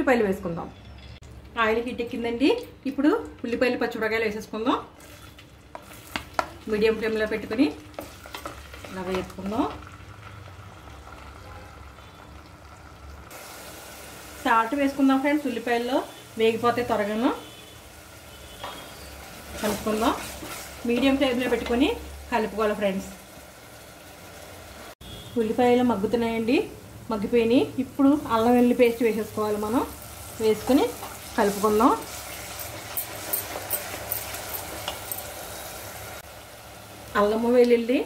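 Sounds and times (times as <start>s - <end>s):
onions frying in oil: 3.0s - 38.0s.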